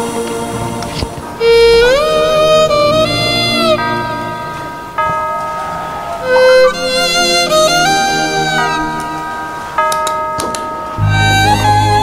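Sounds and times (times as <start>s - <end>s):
bell-like chimes: 1.3s - 12.0s.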